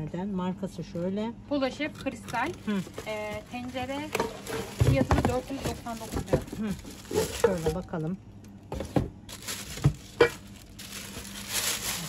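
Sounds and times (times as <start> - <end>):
steady low hum: 0.0 - 12.0
plastic wrapping rustling: 2.4 - 8.1, 8.8 - 12.0.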